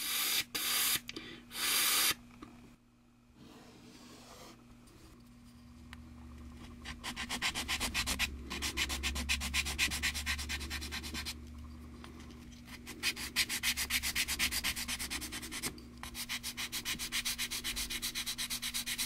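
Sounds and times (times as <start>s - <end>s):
sanding plastic by hand: 6.8s - 11.4s, 12.7s - 19.0s.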